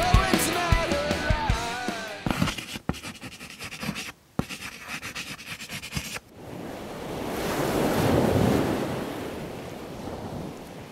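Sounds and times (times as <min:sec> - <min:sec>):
ocean wave rushing in: 0:06.4 - 0:10.9.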